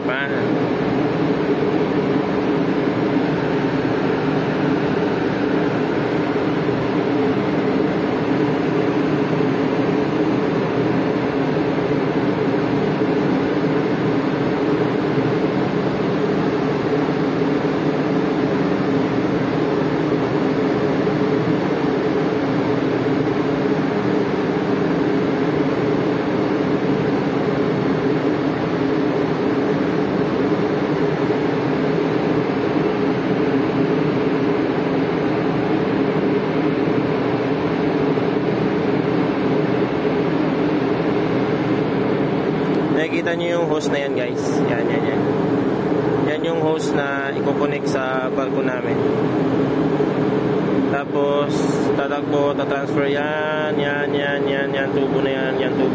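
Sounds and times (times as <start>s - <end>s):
ship engines droning: 0.0s - 55.9s.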